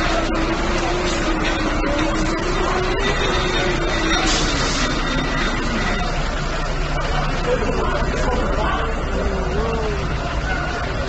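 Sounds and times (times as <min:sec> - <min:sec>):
fire engine pump motor running: 0:00.0 - 0:11.0
street noise: 0:00.0 - 0:11.0.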